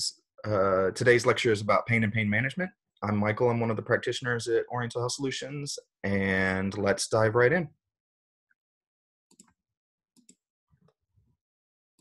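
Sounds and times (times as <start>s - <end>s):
faint computer mouse clicks: 10.2s - 10.4s.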